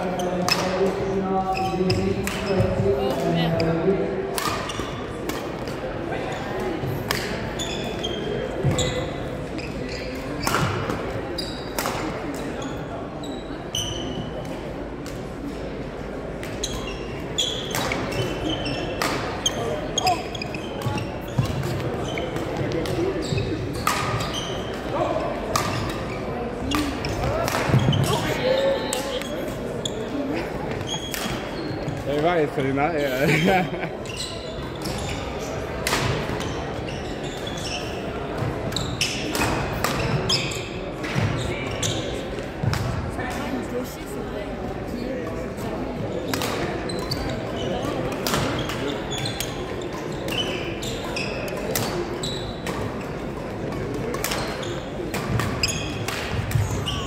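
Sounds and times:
shoes squeaking on wooden floor: 7.6s - 10.7s, 16.6s - 35.5s, 54.4s - 56.0s
racket hitting shuttlecock: 11.7s - 12.4s, 25.5s - 26.1s, 26.7s - 28.2s, 53.8s - 56.6s.

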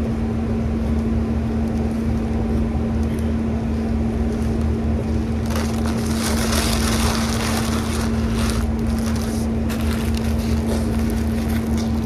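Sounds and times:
steady low hum: 0.0s - 12.0s
paper wrapper crinkling: 5.3s - 12.0s.

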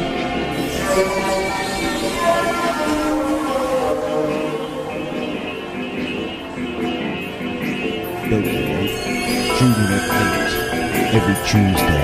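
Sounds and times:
ambient dub music: 0.0s - 12.0s
long held horn-like tones: 0.1s - 5.8s.

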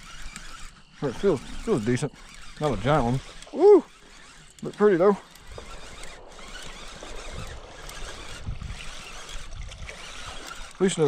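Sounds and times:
fishing reel whirring: 0.0s - 11.0s.

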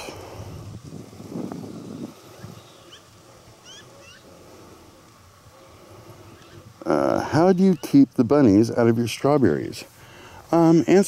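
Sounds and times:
faint bird chirps: 1.7s - 4.3s.

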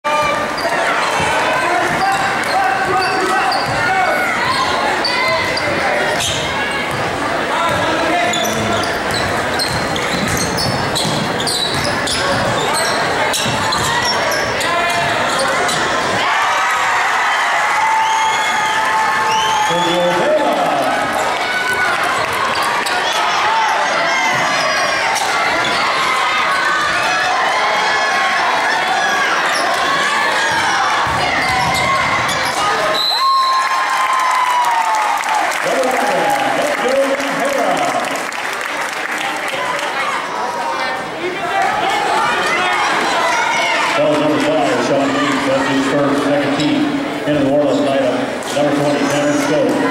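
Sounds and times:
people shouting and chattering: 0.0s - 49.9s
sneakers squeaking: 0.2s - 16.2s, 21.2s - 27.0s, 29.1s - 33.6s.

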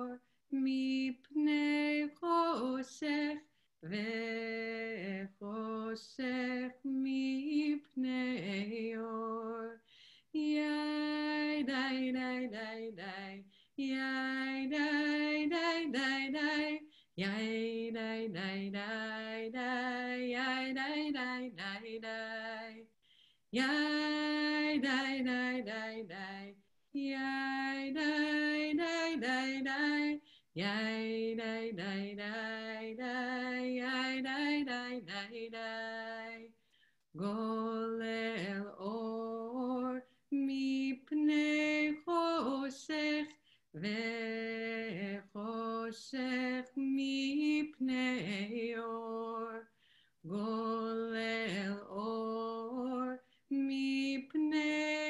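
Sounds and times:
woman singing unaccompanied: 0.0s - 55.0s.

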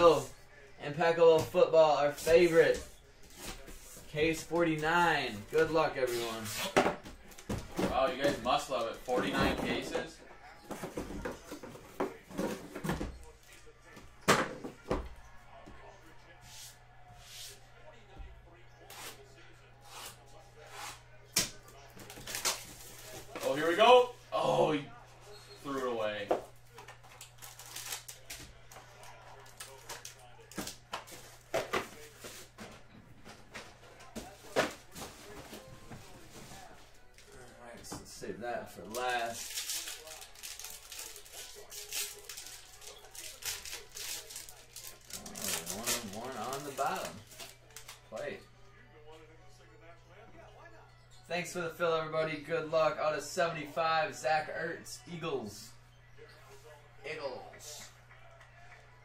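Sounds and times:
plastic wrap crinkling: 39.2s - 48.0s.

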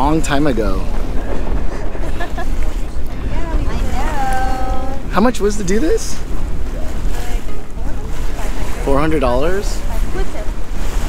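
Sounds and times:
faint voices: 0.0s - 11.0s
wind buffeting microphone: 0.0s - 11.0s.

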